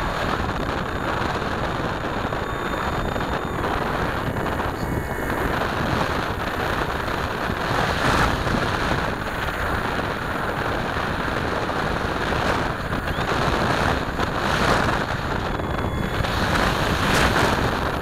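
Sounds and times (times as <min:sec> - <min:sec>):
model plane motor and propeller: 0:00.0 - 0:18.0
wind buffeting microphone: 0:00.0 - 0:18.0.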